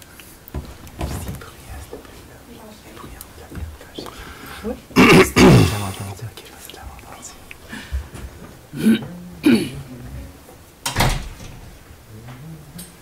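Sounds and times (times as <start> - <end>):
throaty vocal sounds: 4.1 - 6.3, 8.7 - 9.8
person clearing throat: 5.0 - 6.3, 8.8 - 9.9.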